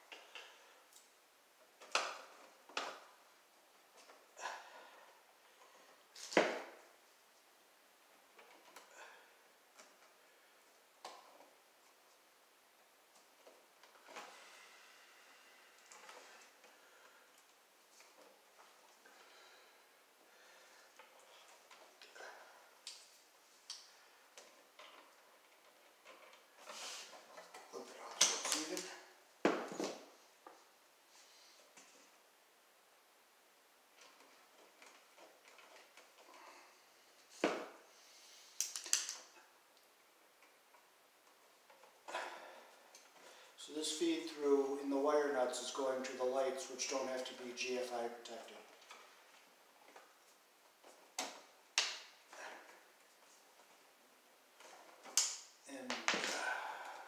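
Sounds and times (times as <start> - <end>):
wires and pliers clicking: 38.6 - 39.3, 55.0 - 55.5.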